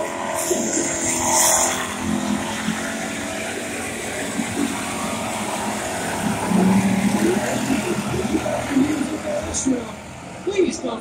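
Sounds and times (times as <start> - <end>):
race car engines: 0.0 - 11.0.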